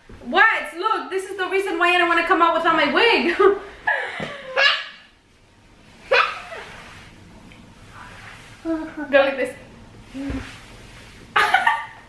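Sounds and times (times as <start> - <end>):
dog yelping barks: 4.6 - 5.1, 6.1 - 6.6.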